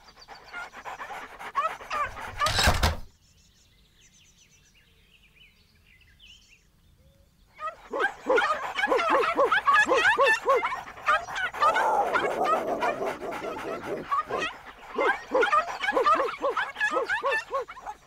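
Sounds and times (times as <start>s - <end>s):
cartoon dog yapping: 7.6s - 18.0s.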